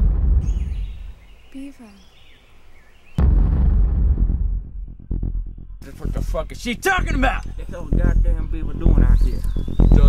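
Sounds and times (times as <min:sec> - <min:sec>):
deep rumbling boom: 0:00.0 - 0:01.2, 0:03.2 - 0:10.0.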